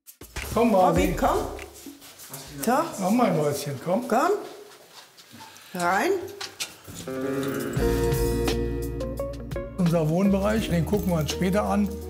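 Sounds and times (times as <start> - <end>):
background music: 0.1 - 3.1, 6.9 - 12.0.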